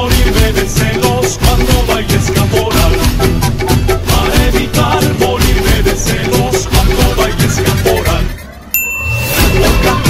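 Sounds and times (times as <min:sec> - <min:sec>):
dance music: 0:00.0 - 0:10.0
bell-like ding: 0:08.7 - 0:10.0.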